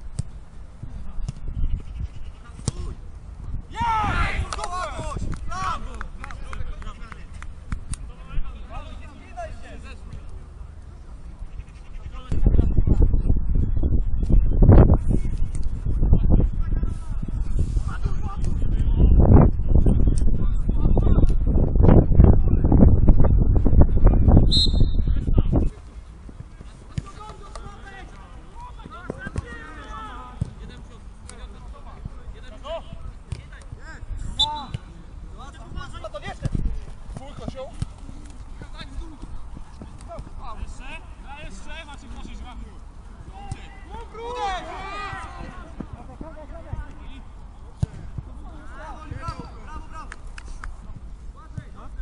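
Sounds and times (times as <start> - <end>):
players shouting: 3.7 - 6.2, 27.0 - 30.7, 37.2 - 47.2
wind buffeting microphone: 11.5 - 26.7
referee's whistle: 24.5 - 25.1, 34.3 - 34.8
players calling out: 33.7 - 50.6.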